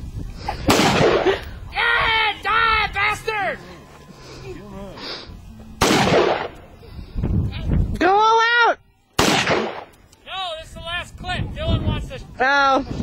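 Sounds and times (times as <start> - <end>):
rifle shots: 0.7 - 1.4, 5.8 - 6.6, 9.2 - 10.0.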